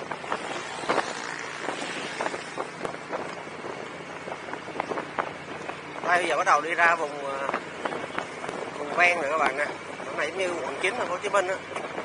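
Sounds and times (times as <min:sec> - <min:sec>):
motorcycle road noise: 0:00.0 - 0:12.0
wind rushing over microphone: 0:00.0 - 0:12.0.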